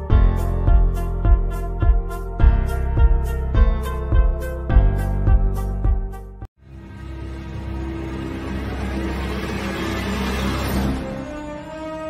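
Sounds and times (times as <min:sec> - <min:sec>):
music: 0:00.0 - 0:12.0
low drone: 0:06.6 - 0:12.0.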